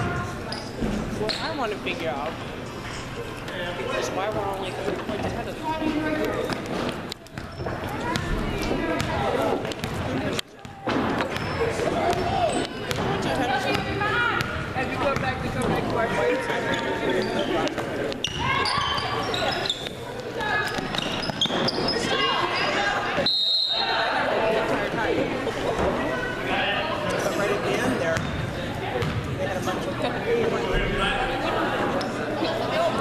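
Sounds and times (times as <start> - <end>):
spectators talking and calling: 0.0 - 33.0.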